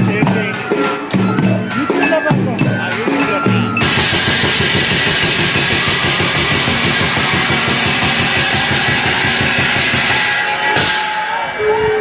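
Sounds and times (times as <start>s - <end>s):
fast dense drumming: 0.0s - 11.2s
metal percussion shimmer: 0.0s - 12.0s.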